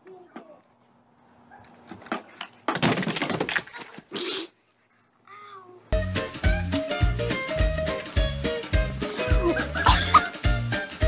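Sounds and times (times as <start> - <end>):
person yelping: 9.1 - 10.3.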